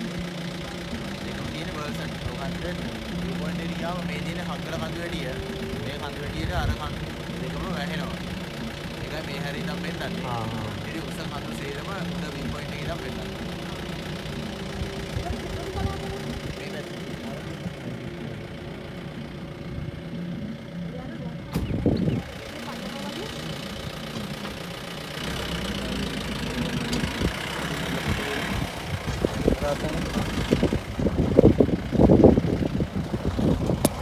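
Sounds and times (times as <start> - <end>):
jeep engine idling: 0.0 - 34.0.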